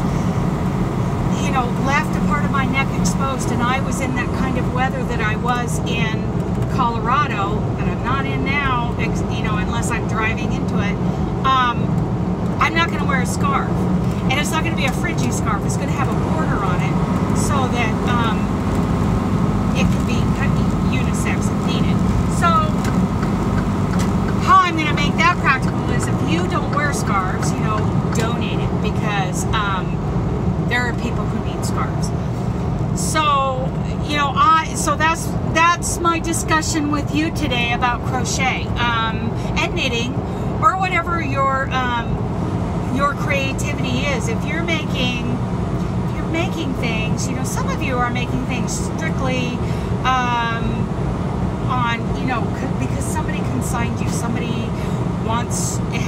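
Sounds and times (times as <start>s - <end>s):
truck engine and road noise: 0.0s - 56.0s
woman talking: 1.3s - 12.0s, 12.6s - 18.6s, 19.7s - 22.8s, 24.4s - 30.0s, 30.7s - 32.2s, 33.0s - 42.2s, 42.9s - 45.4s, 46.1s - 50.9s, 51.7s - 56.0s.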